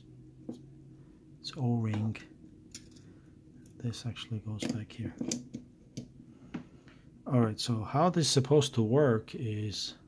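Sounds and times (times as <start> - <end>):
person speaking: 1.4 - 2.4, 3.7 - 5.4
small metal parts clicking: 2.7 - 3.8.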